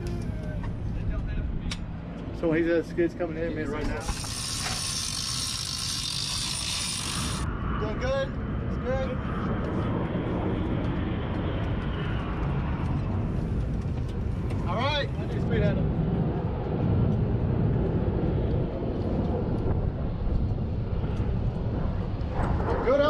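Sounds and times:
airfield rumbling noise: 0.0 - 23.0.

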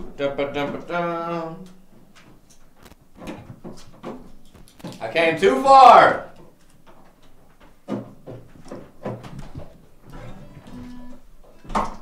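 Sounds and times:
faint clicks and knocks: 1.6 - 5.0.

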